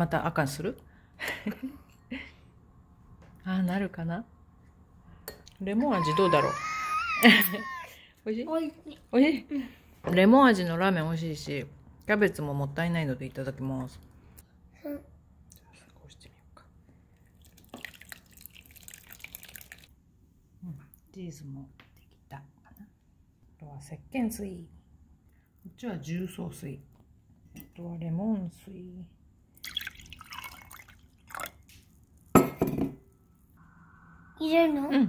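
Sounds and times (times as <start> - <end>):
water pouring into a glass: 17.2 - 19.9, 29.6 - 31.7.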